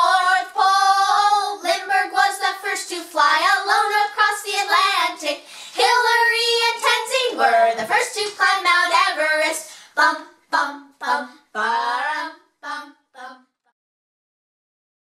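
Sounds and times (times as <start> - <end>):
woman and children singing: 0.0 - 13.7.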